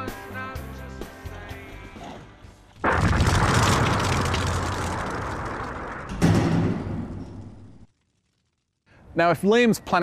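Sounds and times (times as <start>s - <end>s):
explosion-like boom: 2.8s - 7.9s.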